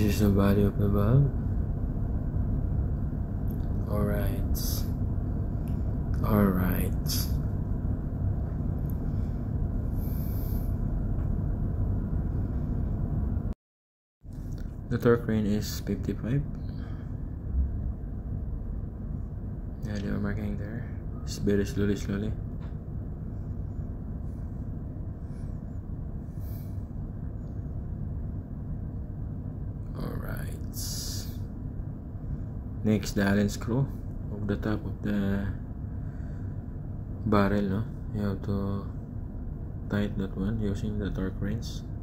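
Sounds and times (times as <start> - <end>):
engine room machinery rumble: 0.0 - 13.6, 14.2 - 42.0.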